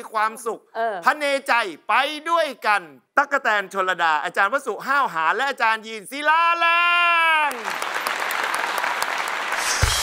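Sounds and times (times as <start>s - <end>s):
audience applauding: 7.4s - 10.0s.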